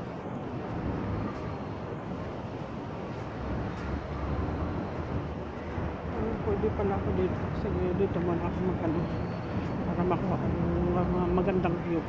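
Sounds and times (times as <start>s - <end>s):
faint distant city noise: 0.0s - 12.0s
wind buffeting microphone: 0.0s - 12.0s.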